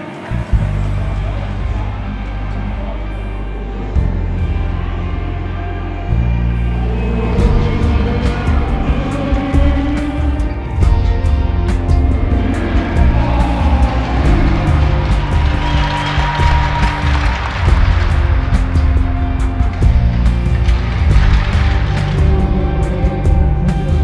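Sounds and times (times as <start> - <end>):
music with pulsing bass: 0.0 - 24.0.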